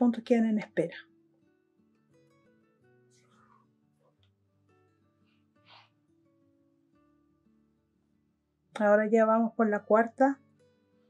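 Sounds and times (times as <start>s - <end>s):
faint plucked guitar music: 0.0s - 11.0s.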